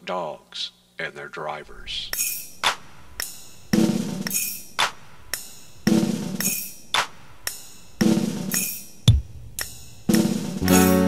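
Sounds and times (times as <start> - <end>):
drum-kit rhythm: 1.7 - 11.0.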